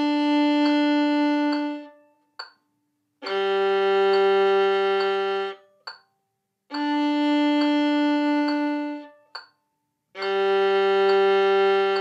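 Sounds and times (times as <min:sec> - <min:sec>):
violin bowing long notes: 0:00.0 - 0:02.0, 0:03.2 - 0:05.7, 0:06.7 - 0:09.2, 0:10.2 - 0:12.0
soft ticks on each beat: 0:00.0 - 0:12.0.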